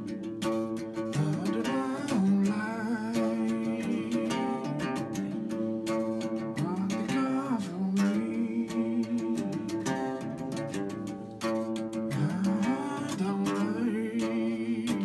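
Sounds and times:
electric guitar strumming: 0:00.0 - 0:15.0
man singing: 0:01.0 - 0:10.8, 0:11.9 - 0:15.0.

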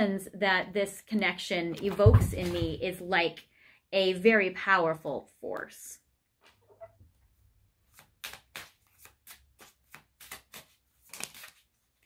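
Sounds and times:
cards being shuffled: 0:07.8 - 0:12.0.

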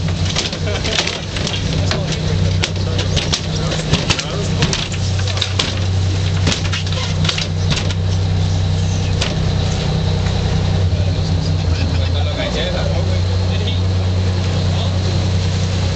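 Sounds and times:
boat engine droning: 0:00.0 - 0:15.9.

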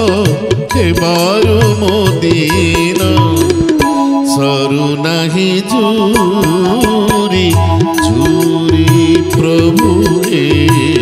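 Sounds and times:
tabla strokes: 0:00.0 - 0:05.4, 0:06.1 - 0:11.0
harmonium: 0:00.0 - 0:11.0
man singing devotional song: 0:00.0 - 0:11.0.

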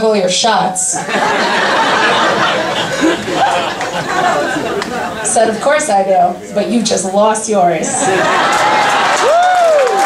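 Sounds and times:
audience chattering: 0:00.5 - 0:09.4
audience laughing: 0:00.9 - 0:05.8, 0:07.8 - 0:09.4.

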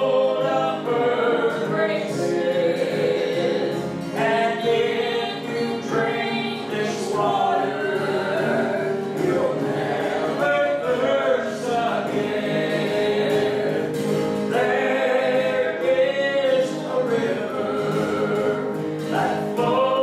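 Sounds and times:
acoustic guitar: 0:00.0 - 0:20.0
woman and man singing hymn: 0:00.0 - 0:20.0.

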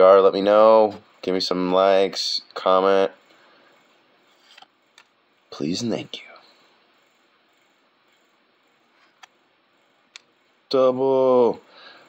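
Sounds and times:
person speaking: 0:00.0 - 0:03.8, 0:05.4 - 0:06.8, 0:10.2 - 0:11.7.

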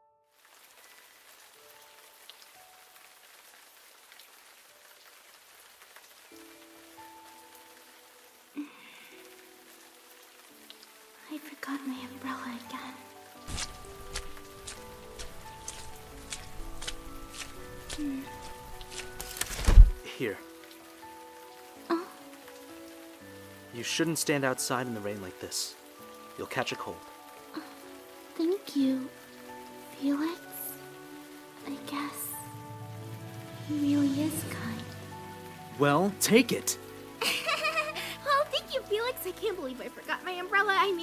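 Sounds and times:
soft background music: 0:00.0 - 0:41.0
steady rain falling: 0:00.3 - 0:41.0.

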